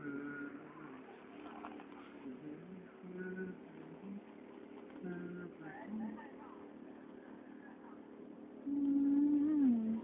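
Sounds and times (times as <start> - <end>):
person humming: 0.0 - 1.1, 2.2 - 4.3, 5.0 - 6.2, 8.6 - 10.0
faint voices: 0.0 - 10.0.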